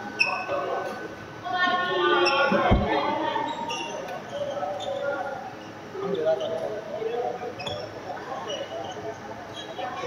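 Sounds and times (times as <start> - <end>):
people talking in a hall: 0.0 - 10.0
low thud on the floor: 2.6 - 3.0.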